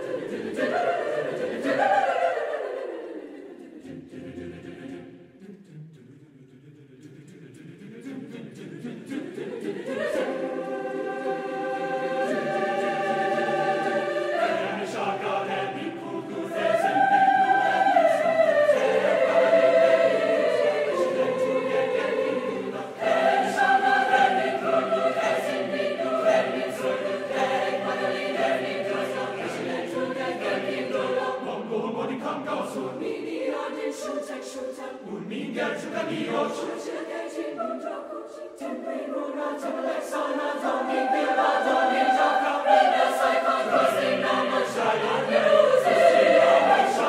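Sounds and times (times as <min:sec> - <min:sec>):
choir singing sustained chords: 0:00.0 - 0:47.0.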